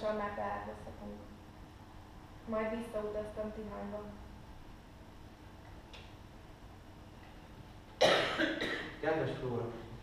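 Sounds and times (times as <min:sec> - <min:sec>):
person coughing: 0:08.0 - 0:09.0.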